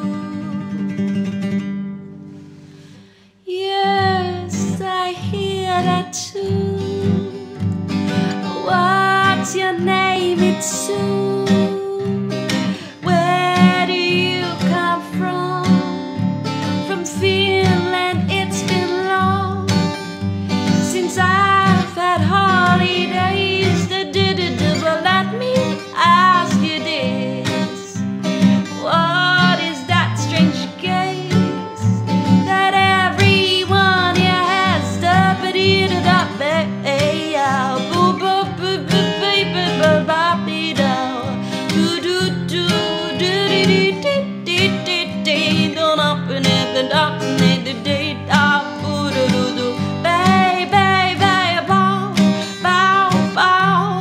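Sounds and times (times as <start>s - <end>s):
strummed acoustic guitars: 0.0s - 54.0s.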